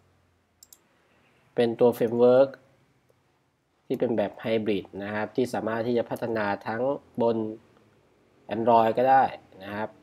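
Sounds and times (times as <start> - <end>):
faint computer clicks: 0.6 - 0.9
man speaking: 1.6 - 2.6, 3.9 - 7.7, 8.5 - 10.0.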